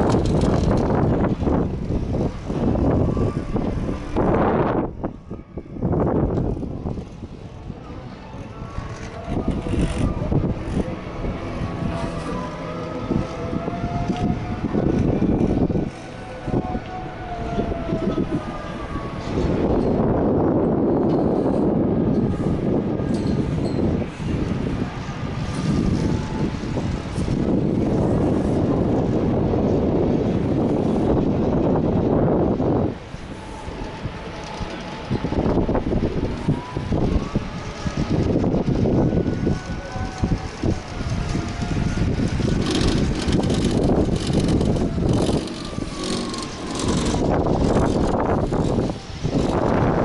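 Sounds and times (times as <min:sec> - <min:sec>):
lift cable rumble and whine: 0:00.0 - 0:50.0
wind buffeting microphone: 0:00.0 - 0:50.0.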